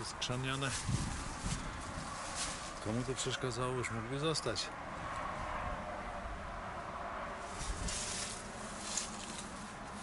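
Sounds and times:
wind rumble on microphone: 0:00.5 - 0:03.0, 0:04.8 - 0:10.0.

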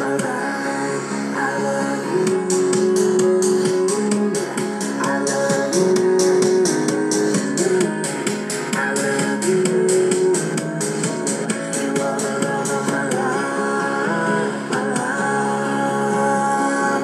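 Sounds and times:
pop song through small speaker: 0:00.0 - 0:17.0.

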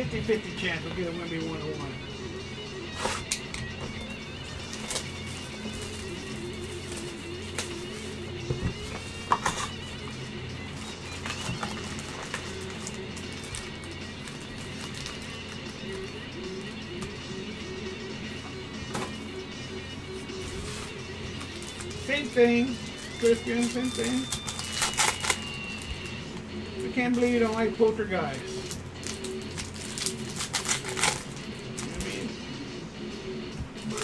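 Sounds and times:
background music: 0:00.0 - 0:34.0
card packs crackling and clicking: 0:03.0 - 0:17.2, 0:20.4 - 0:32.3.

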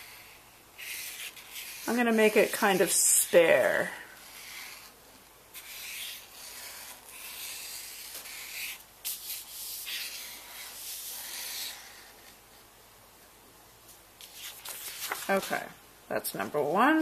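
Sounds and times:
marker scribbling on paper: 0:00.0 - 0:05.0, 0:05.6 - 0:12.3.

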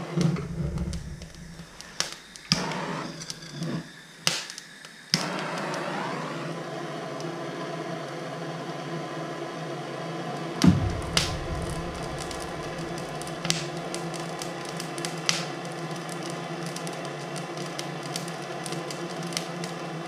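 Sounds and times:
propane torch hissing: 0:00.0 - 0:20.0
loud low thump: 0:10.6 - 0:13.7
kindling snapping: 0:10.6 - 0:14.5.

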